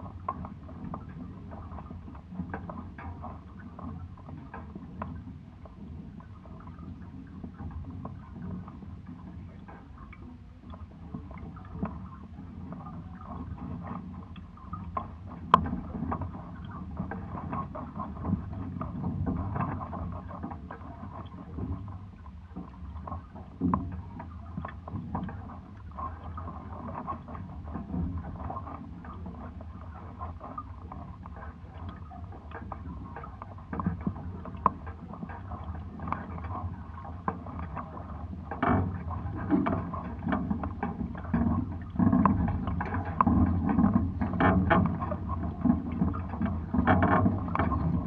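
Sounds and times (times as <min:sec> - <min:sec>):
water lapping against hulls: 0:00.0 - 0:48.0
boat rigging clicks and creaks: 0:36.9 - 0:48.0.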